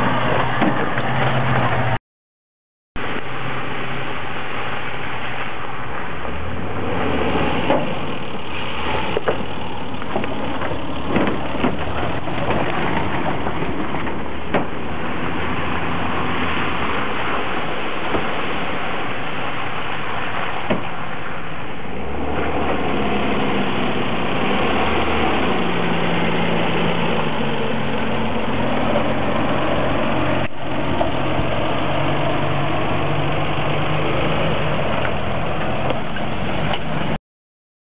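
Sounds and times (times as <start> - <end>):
engine revving under load: 3.0 - 37.2
short knocks: 9.2 - 14.8.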